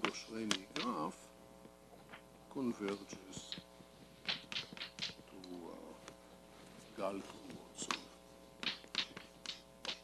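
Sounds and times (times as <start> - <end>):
chalk tapping and scratching: 4.2 - 5.2, 7.8 - 10.0.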